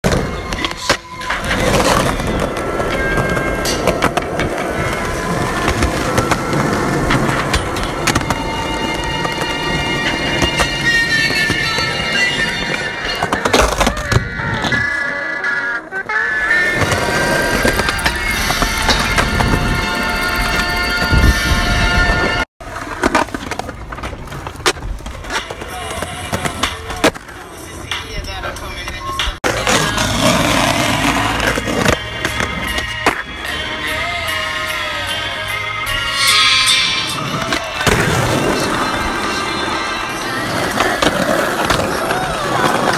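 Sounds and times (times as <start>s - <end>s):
skateboard clacking: 0.0s - 33.6s, 37.1s - 42.9s
skateboard wheels on concrete: 0.0s - 42.9s
background music: 29.6s - 42.2s.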